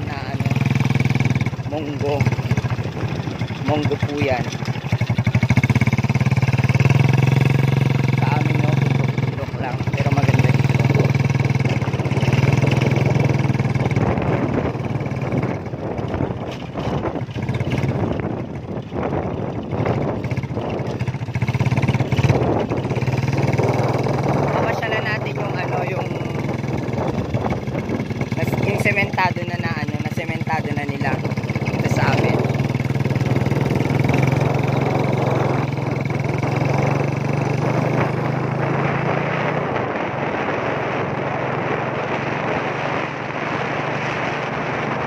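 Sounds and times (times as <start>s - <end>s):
small motorcycle engine running: 0.0s - 45.0s.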